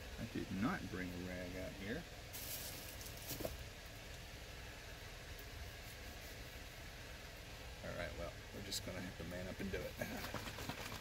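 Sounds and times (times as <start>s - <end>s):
faint low hum: 0.0s - 11.0s
soft hiss: 0.0s - 11.0s.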